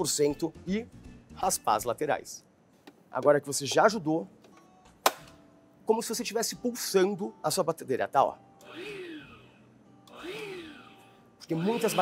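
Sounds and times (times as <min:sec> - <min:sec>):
stand mixer motor bursts: 0:08.6 - 0:12.0.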